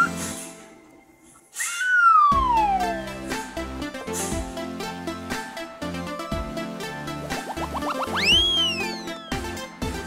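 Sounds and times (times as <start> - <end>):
background music: 0.0 - 10.0
falling whistle: 1.5 - 3.0, 8.0 - 9.4.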